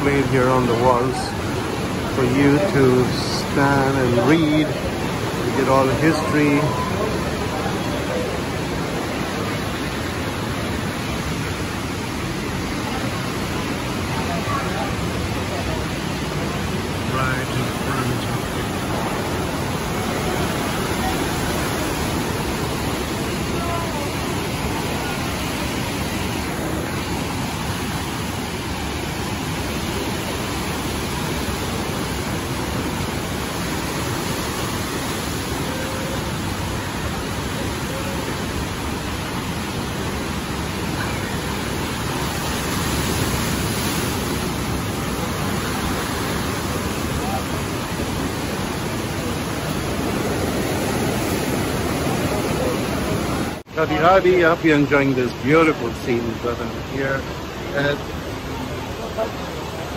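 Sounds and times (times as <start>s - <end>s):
river rapids roaring: 0.0s - 59.9s.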